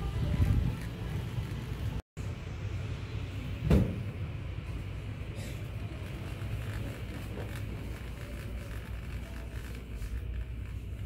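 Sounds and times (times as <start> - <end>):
sharp thump: 3.6 - 4.1
shopping cart rolling: 5.3 - 11.0.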